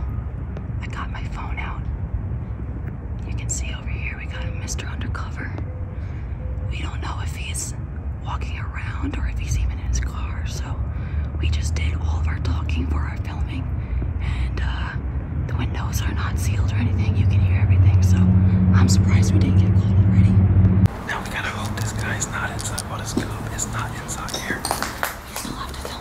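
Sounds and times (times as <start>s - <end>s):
steady low rumble: 0.0s - 26.0s
people whispering: 11.4s - 26.0s.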